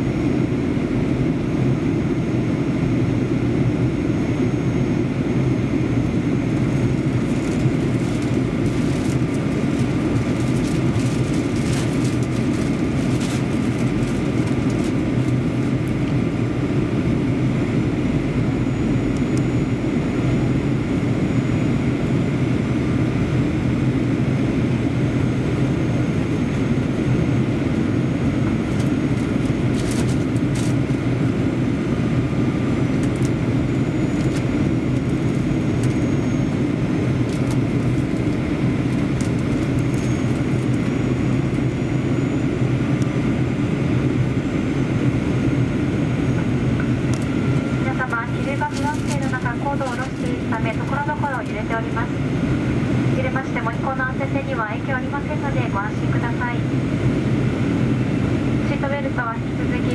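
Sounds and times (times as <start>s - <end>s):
airliner cabin rumble: 0.1s - 59.9s
faint high whine: 3.6s - 52.5s.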